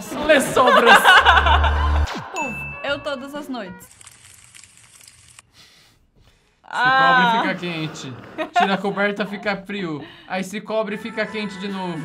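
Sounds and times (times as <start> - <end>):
fire crackling: 3.9 - 5.8.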